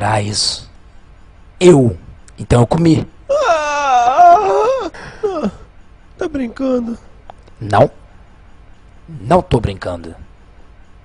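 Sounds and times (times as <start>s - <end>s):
dog whining: 3.3s - 5.6s.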